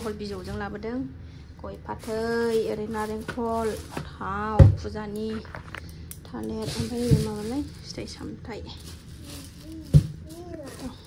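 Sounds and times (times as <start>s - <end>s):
woman talking: 0.0s - 9.0s.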